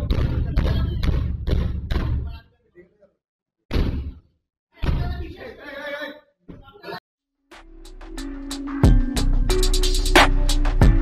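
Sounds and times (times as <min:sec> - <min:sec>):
heavy deep thumps: 0:00.0 - 0:02.4.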